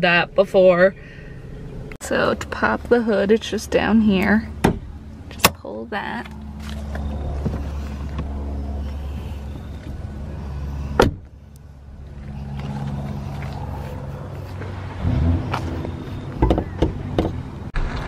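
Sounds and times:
car engine idling: 0.9 - 17.8.

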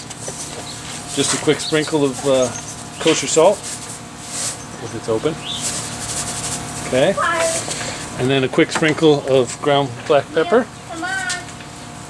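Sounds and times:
skillet hissing: 0.0 - 8.3.

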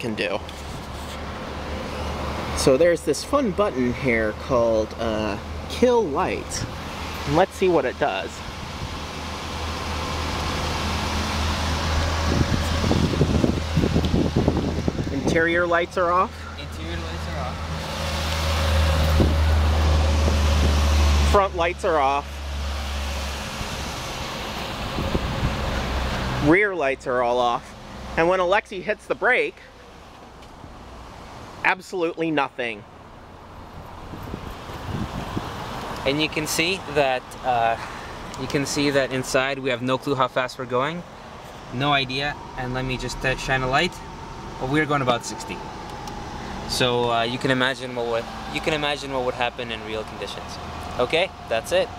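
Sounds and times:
car engine drone: 0.0 - 31.7, 32.6 - 51.9
wind on microphone: 12.0 - 15.7, 19.0 - 20.9, 24.8 - 25.8, 33.9 - 35.7.

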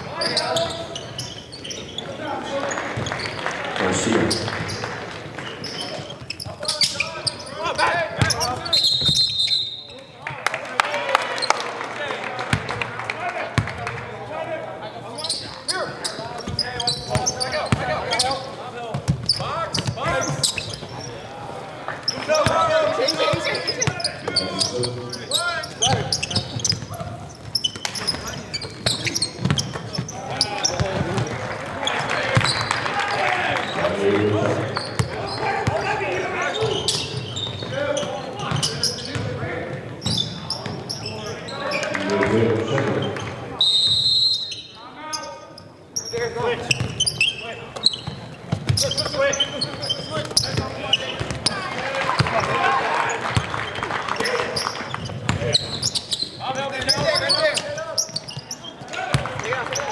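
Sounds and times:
basketball bouncing on court: 18.9 - 21.0, 25.8 - 31.3, 34.8 - 35.9, 38.4 - 40.8, 47.8 - 52.5, 54.9 - 55.7
voices and shouts: 30.1 - 39.7, 48.8 - 54.7.

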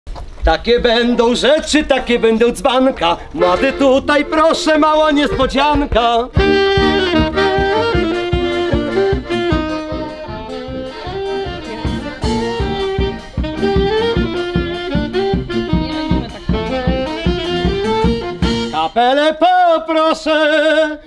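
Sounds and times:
accordion: 3.0 - 19.2
brass band playing folk tune: 3.0 - 19.3.

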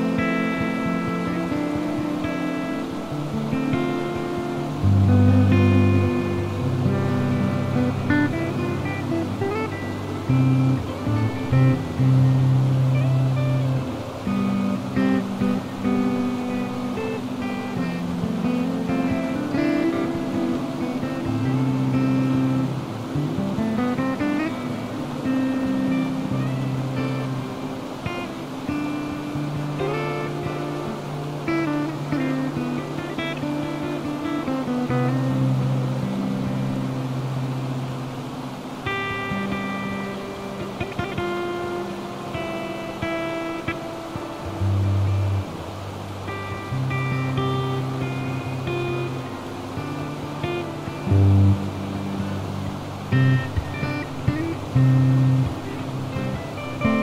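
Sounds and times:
plucked acoustic guitar: 0.0 - 57.0.

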